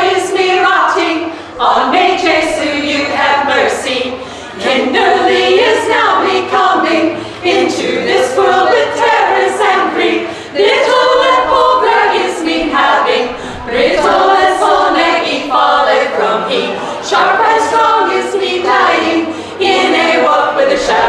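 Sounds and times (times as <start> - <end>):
women's choir singing: 0.0 - 21.0.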